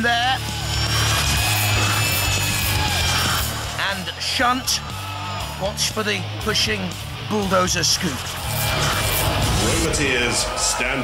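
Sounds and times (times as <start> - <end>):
background music with bass: 0.0 - 11.0
mechanical sliding grinding effect: 0.4 - 4.0, 8.0 - 10.4.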